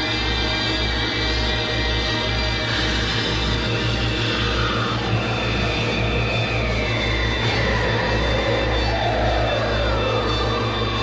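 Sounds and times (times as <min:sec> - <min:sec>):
dark ambient drone: 0:00.0 - 0:11.0.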